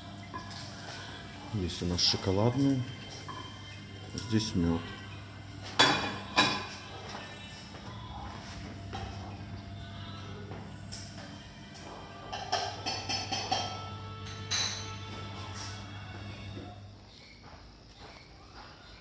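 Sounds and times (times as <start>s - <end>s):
steady low hum: 0.0s - 19.0s
crockery clinking: 5.8s - 6.9s, 12.2s - 15.1s.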